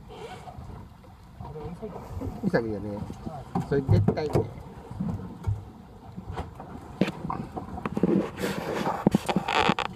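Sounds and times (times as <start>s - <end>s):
sea noise: 0.0s - 9.9s
wind: 0.0s - 9.9s.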